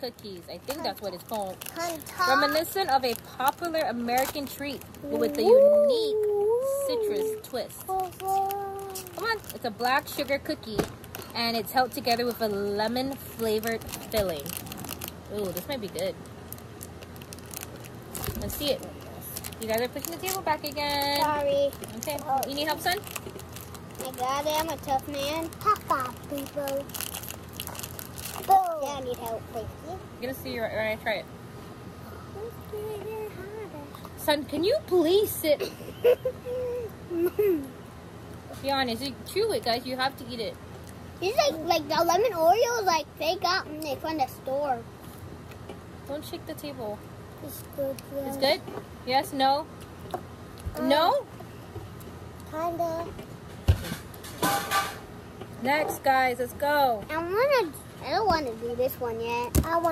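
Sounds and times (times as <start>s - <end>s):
child's voice: 0.6s - 2.8s, 5.0s - 9.5s, 20.8s - 22.5s, 24.0s - 26.9s, 28.4s - 30.2s, 32.2s - 34.0s, 41.2s - 44.8s, 47.4s - 48.6s, 50.7s - 51.2s, 52.5s - 53.2s, 57.1s - 59.9s
plastic wrapper crinkling: 0.6s - 5.5s, 7.0s - 29.4s.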